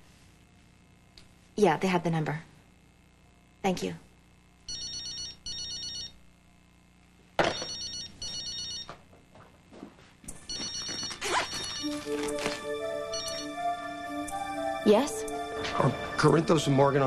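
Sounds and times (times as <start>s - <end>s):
mobile phone ringing: 4.7s - 6.2s, 7.4s - 9.0s, 10.4s - 13.8s.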